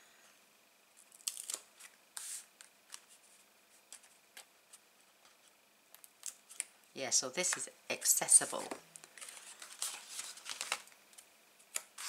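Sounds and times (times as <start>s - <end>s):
paper and card rustling: 8.3s - 11.0s.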